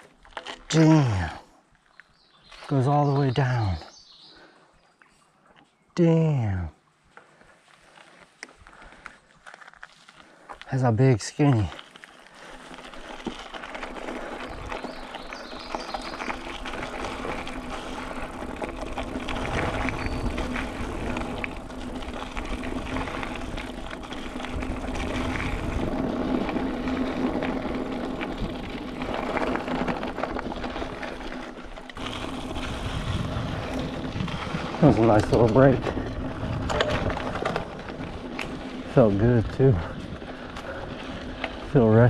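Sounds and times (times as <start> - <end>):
bike drivetrain and frame rattles: 0.0 - 4.5, 7.1 - 10.7, 11.3 - 42.0
bike tyres on dirt: 0.0 - 42.0
wind on microphone: 32.4 - 37.4.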